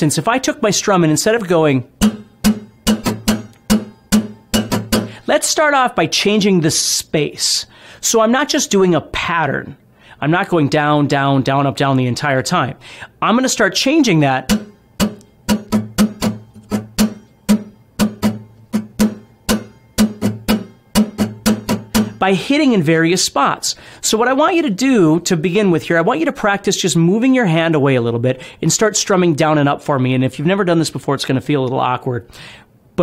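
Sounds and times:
acoustic guitar strummed: 1.8s - 5.4s, 14.1s - 22.6s.

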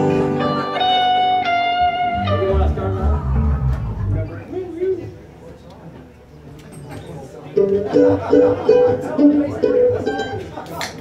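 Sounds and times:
guitar notes: 0.0s - 4.4s.

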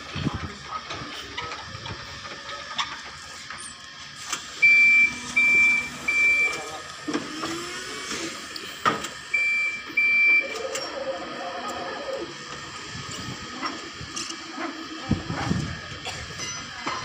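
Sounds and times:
forklift warning beeps: 4.5s - 7.0s, 9.2s - 12.2s.

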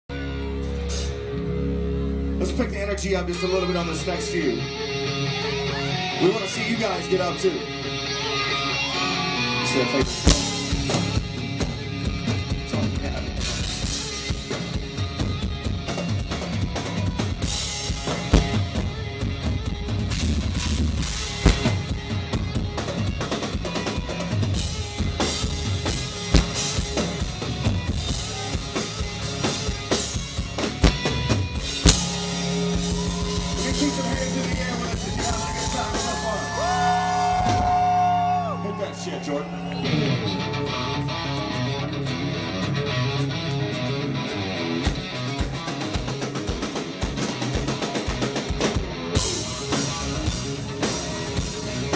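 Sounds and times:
live rock band playing: 0.1s - 51.9s
drum kit beat: 10.1s - 37.8s
sliding higher notes: 24.5s - 42.8s.

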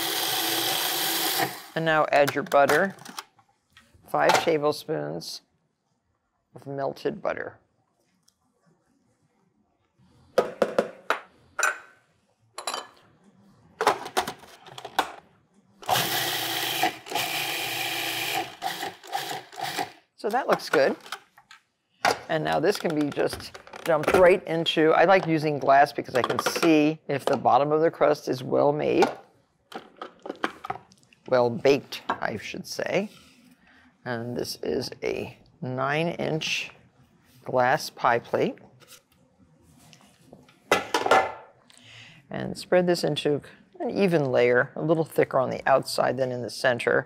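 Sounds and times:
food processor motor running: 0.0s - 1.7s, 15.8s - 19.9s.

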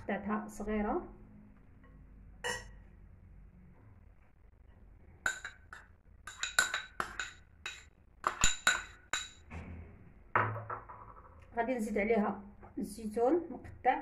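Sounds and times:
metal spoon clinking on ceramic bowls: 2.4s - 2.8s, 5.3s - 9.5s.

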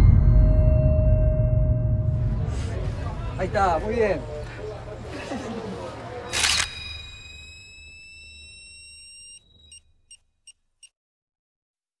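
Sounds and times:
low drone: 0.0s - 3.5s
high whine: 0.0s - 3.8s
camera shutter snap: 6.3s - 7.2s
short high beeps: 6.4s - 9.9s.

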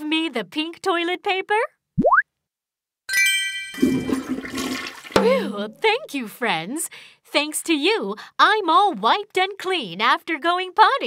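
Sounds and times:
sparkling chime: 3.1s - 4.0s
toilet flushing: 3.8s - 5.2s.

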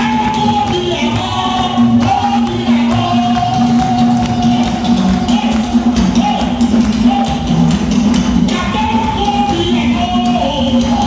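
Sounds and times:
voices singing gospel: 0.0s - 7.7s
band with steady beat: 0.0s - 11.0s
congregation clapping: 0.0s - 11.0s.

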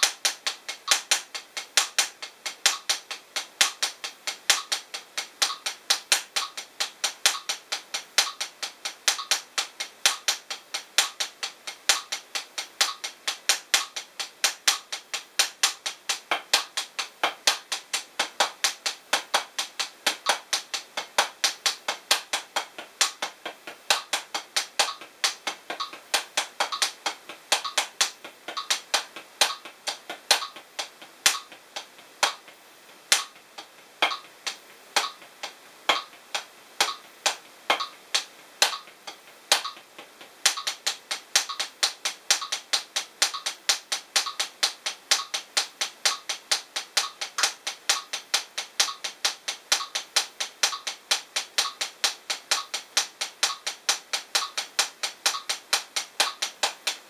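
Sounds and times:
drumsticks on practice pad: 0.0s - 57.0s.

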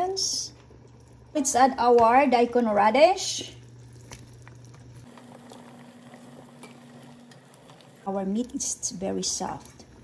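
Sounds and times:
low steady hum: 0.0s - 10.0s
broth simmering with pops: 0.2s - 2.7s, 3.4s - 8.6s.

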